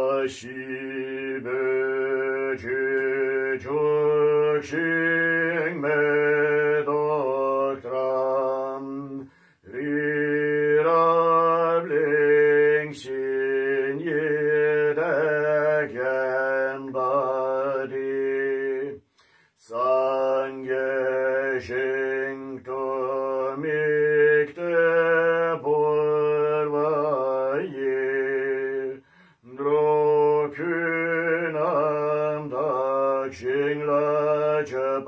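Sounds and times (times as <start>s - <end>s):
man chanting: 0.0s - 19.0s, 19.6s - 35.0s.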